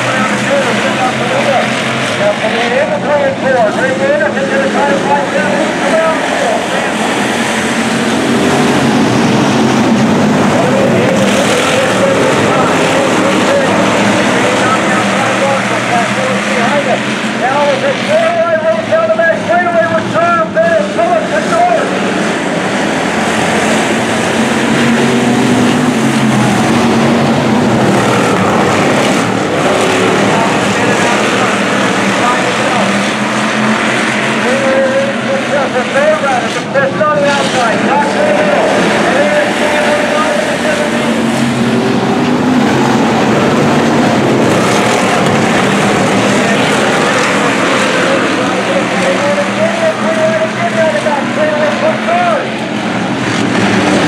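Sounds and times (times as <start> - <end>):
race car engines: 0.0 - 54.0.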